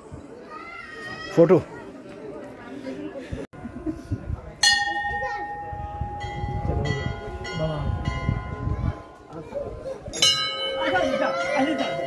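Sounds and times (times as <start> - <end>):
brass bells ringing: 4.6 - 9.4, 10.1 - 12.0.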